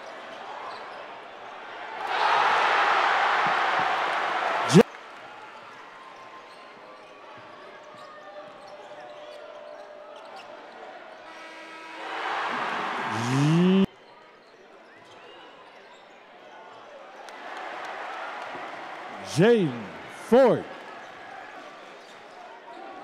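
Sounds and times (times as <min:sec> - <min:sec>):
crowd cheering: 0:01.8 - 0:05.1, 0:12.0 - 0:13.9, 0:17.3 - 0:21.7
person shouting: 0:13.1 - 0:13.9, 0:19.2 - 0:20.6.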